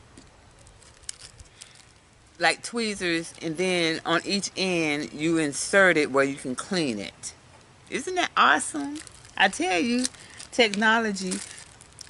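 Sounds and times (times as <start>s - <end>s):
plastic bag crinkling: 0.4s - 5.3s, 8.6s - 12.0s.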